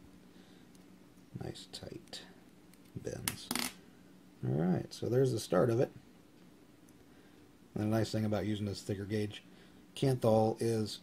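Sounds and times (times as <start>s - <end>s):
man speaking: 3.0s - 3.6s.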